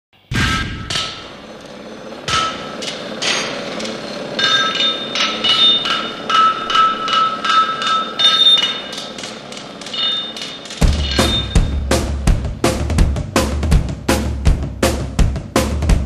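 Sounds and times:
hammer striking metal: 0.2 - 1.6, 2.2 - 12.3.

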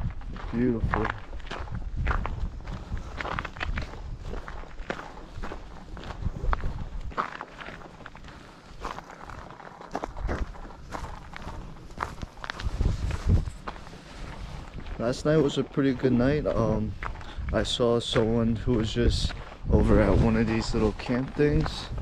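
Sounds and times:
low microphone rumble: 0.0 - 7.2, 10.1 - 22.0
footsteps on rocky dirt trail: 0.0 - 22.0.

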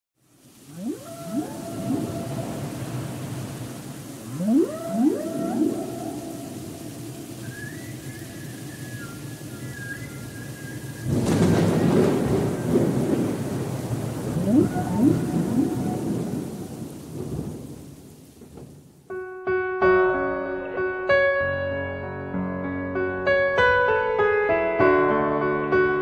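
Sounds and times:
rain hiss: 0.2 - 19.2
whale song moaning calls: 0.5 - 13.4, 14.2 - 17.0
rumble of thunder: 0.5 - 19.0.

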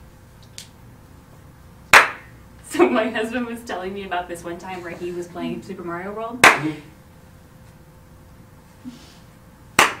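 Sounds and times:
sharp hand clap: 1.9 - 2.3, 6.4 - 6.7, 9.8 - 10.0.

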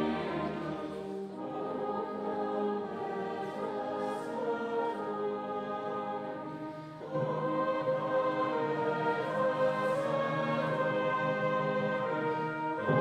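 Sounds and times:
congregation singing a carol: 0.0 - 13.0
brass band playing: 10.3 - 13.0.

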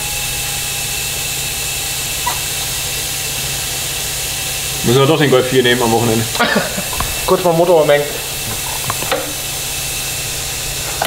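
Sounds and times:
compressed air hissing: 0.0 - 11.0.

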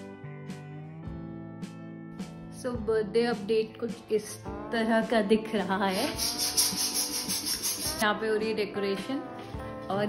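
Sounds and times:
pulsing scratchy rubbing: 5.9 - 8.0.

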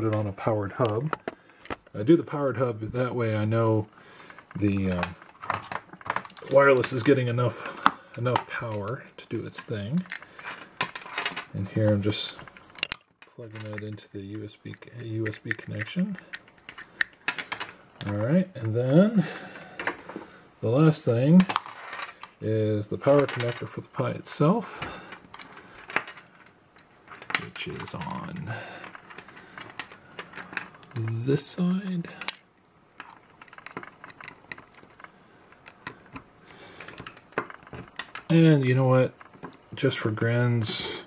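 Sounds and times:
cables being handled: 0.0 - 18.8, 21.3 - 41.0.

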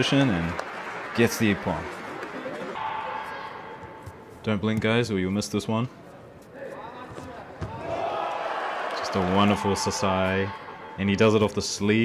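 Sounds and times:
steady held tone: 2.8 - 4.6.

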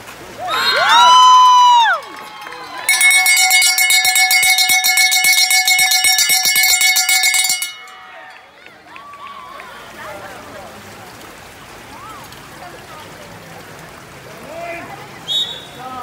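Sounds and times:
cowbell rung rapidly: 2.2 - 8.4.

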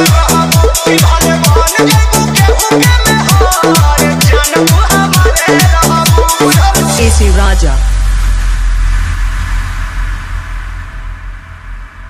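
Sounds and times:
deep electronic bass drone: 6.6 - 12.0.

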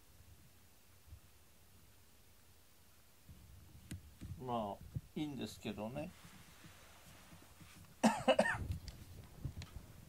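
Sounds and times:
person coughing: 8.0 - 8.7.

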